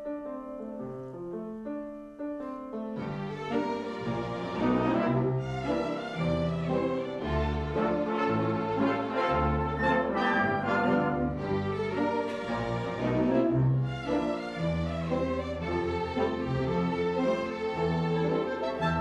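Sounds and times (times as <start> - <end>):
grand piano: 0.0 - 19.0
bowed strings: 3.0 - 19.0
brass: 3.2 - 15.6, 17.7 - 19.0.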